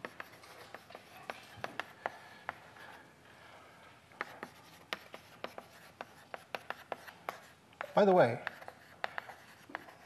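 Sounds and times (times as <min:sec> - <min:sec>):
chalk on a blackboard: 0:00.0 - 0:03.0, 0:04.1 - 0:10.0.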